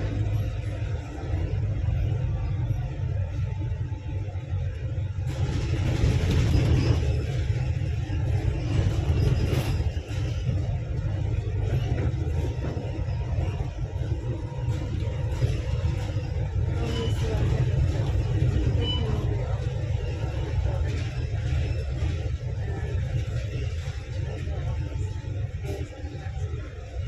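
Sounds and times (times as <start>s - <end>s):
bus engine and tyres rumbling: 0.0s - 27.0s.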